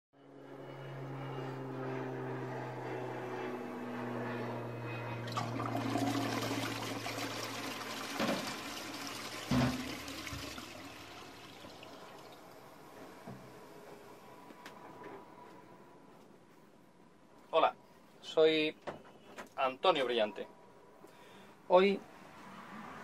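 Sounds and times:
toilet flushing water rush: 5.3s - 12.9s.

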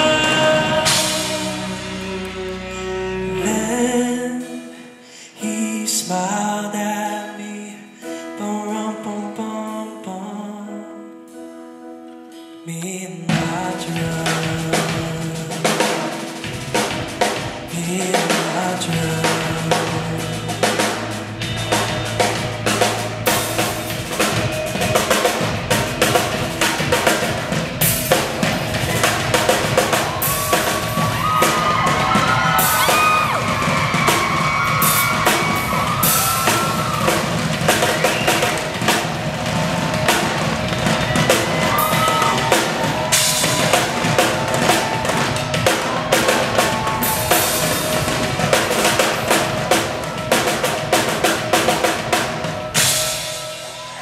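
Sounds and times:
fast drum rolls on drum kit: 0.0s - 2.8s, 13.3s - 54.0s
band playing: 0.0s - 4.8s, 12.9s - 54.0s.

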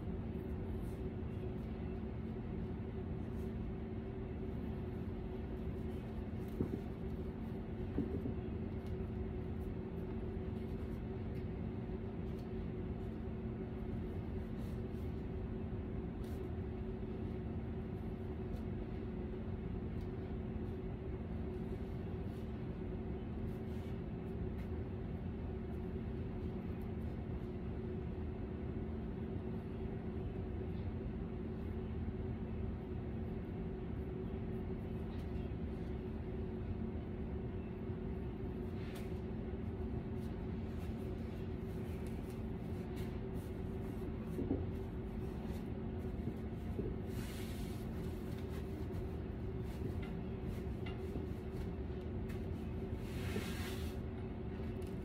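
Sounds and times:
mechanical hum: 0.0s - 55.0s.

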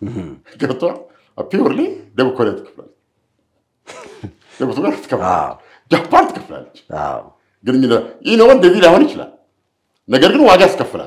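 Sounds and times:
man laughing: 3.9s - 4.8s.

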